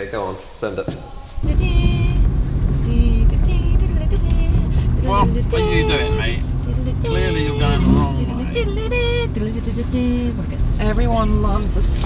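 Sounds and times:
vehicle rumbling over rough ground: 1.4 - 12.0.

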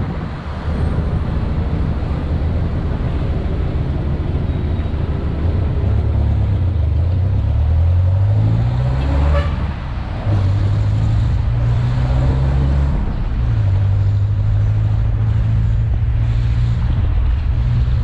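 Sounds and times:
diesel engine accelerating: 0.0 - 18.0.

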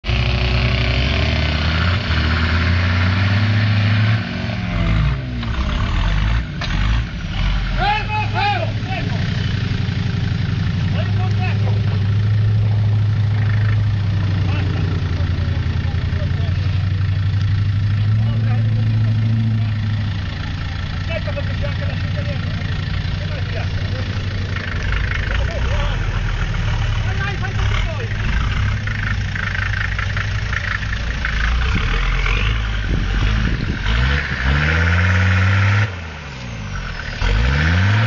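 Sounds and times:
off-road vehicle engine under load: 0.0 - 38.0.

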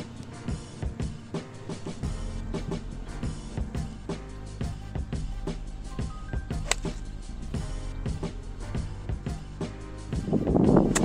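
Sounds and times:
background music with beat: 0.0 - 11.0
golf club striking ball: 6.6 - 7.1.

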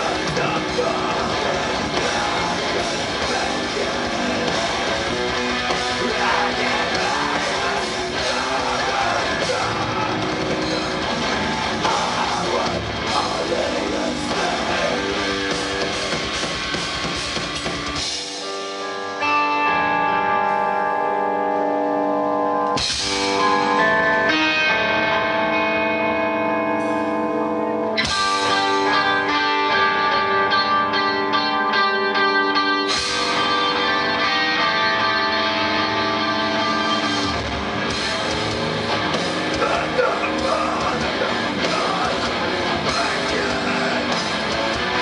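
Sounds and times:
metal band playing live: 0.0 - 45.0
ringing guitar chords: 0.0 - 45.0.

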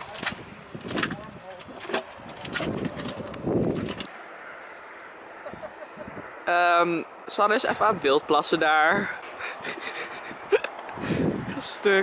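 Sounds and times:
mud pot bubbling and popping: 0.0 - 4.1.

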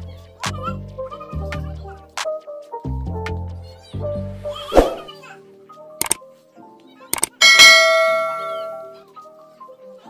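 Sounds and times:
mouse clicks: 6.0 - 6.2, 7.1 - 7.4
notification bell ding: 7.4 - 9.0.

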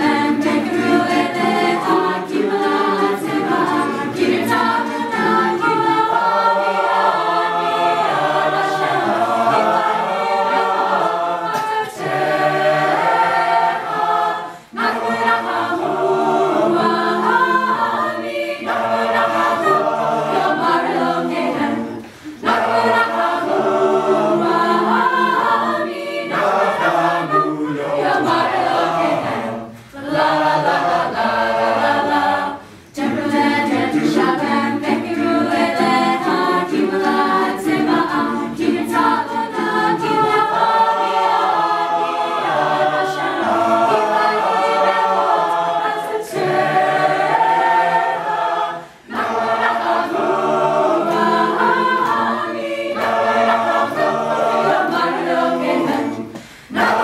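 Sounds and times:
a cappella group singing: 0.0 - 57.0.

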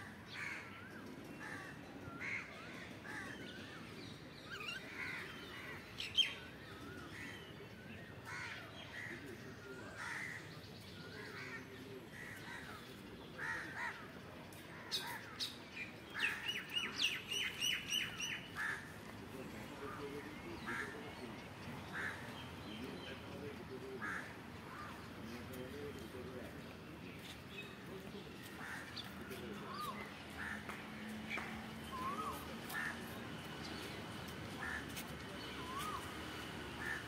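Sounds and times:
birds calling: 10.0 - 37.0.

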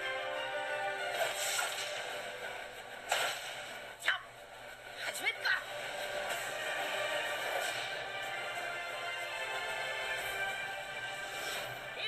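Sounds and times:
trailer music: 0.0 - 12.0
whip-crack hit effect: 3.1 - 3.8.

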